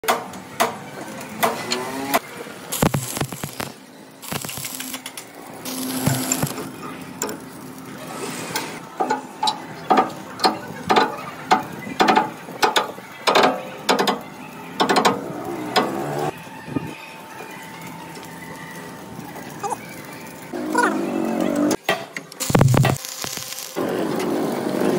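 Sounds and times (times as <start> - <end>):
stick welding arc crackle: 0.1 - 16.4, 17.3 - 24.9.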